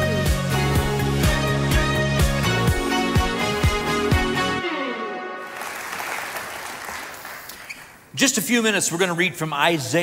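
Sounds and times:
audience applauding: 5.4 - 8.0.

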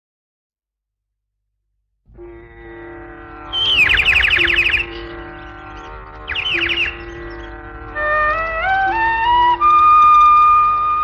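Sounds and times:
held chord: 2.1 - 11.0
falling bird-like chirps: 3.5 - 7.6.

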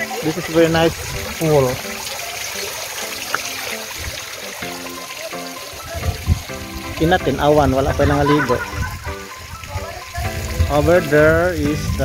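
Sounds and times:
background music: 0.0 - 12.0
water trickling over rocks: 0.0 - 12.0.

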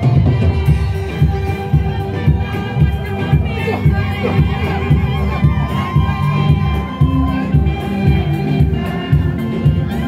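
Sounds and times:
crowd cheering and shouting: 0.0 - 10.0
loud amplified music with beat: 0.0 - 10.0.

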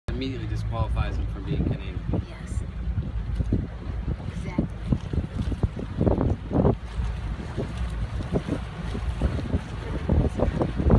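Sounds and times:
wind buffeting microphone: 0.1 - 10.9.

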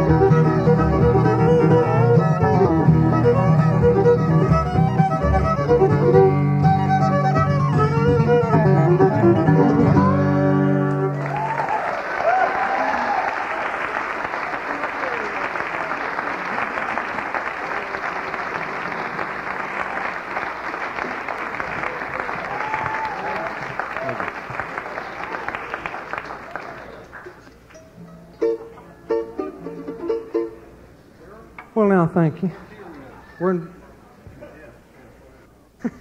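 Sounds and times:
plucked-string notes: 0.0 - 11.1, 27.7 - 30.8
audience applauding and cheering: 10.8 - 27.7.

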